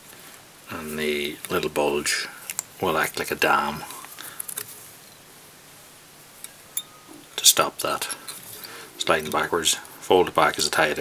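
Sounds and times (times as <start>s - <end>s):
room hiss: 0.0s - 11.0s.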